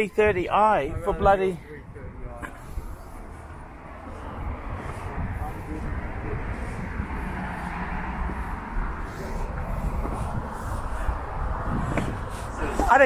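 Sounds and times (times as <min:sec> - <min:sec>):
heavy low rumble: 0:00.0 - 0:13.0.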